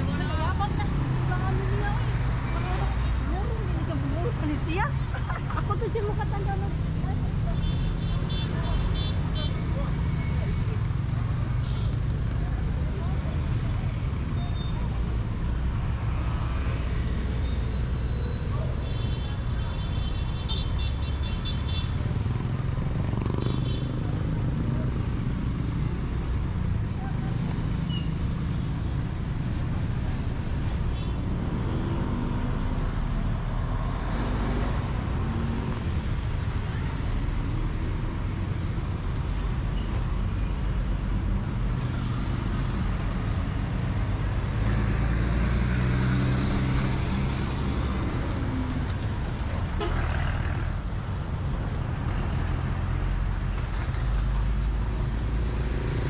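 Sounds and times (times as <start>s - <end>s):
street traffic rumble: 0.0s - 56.0s.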